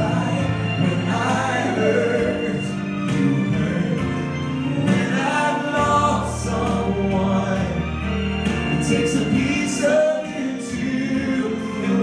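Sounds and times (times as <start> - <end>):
keyboard accompaniment: 0.0 - 12.0
vocal group singing in harmony: 0.0 - 12.0.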